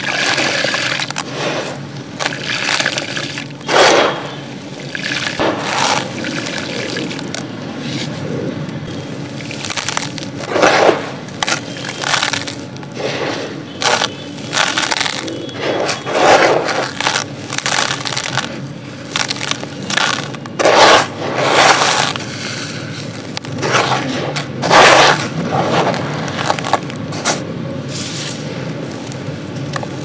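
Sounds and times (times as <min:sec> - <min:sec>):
sand crunching onto clay pot: 0:00.0 - 0:30.0.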